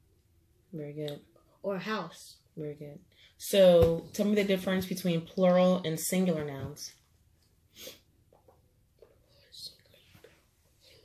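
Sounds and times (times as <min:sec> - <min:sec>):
faint whispering: 0:09.2 - 0:11.0.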